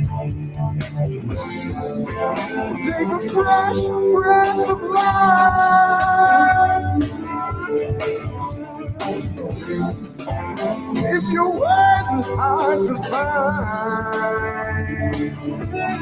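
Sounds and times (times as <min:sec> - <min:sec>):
band playing guitar-led song: 0:00.0 - 0:16.0
steady drum beat: 0:00.0 - 0:16.0.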